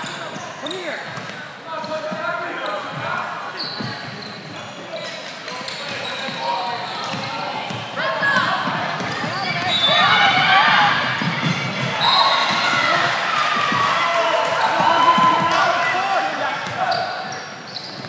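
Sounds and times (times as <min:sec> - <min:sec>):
ball bouncing on hardwood court: 0:07.0 - 0:13.9
people shouting: 0:11.9 - 0:16.5.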